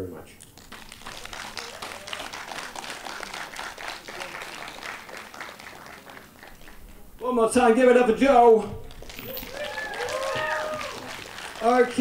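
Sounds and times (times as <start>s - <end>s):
audience applauding: 0.4s - 7.2s, 8.8s - 12.0s.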